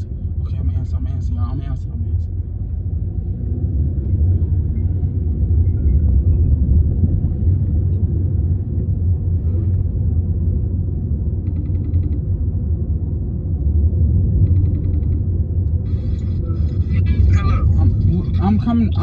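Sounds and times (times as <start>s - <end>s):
voices on a call: 0.0s - 2.3s, 15.9s - 19.0s
car rumble from inside cabin: 0.0s - 19.0s.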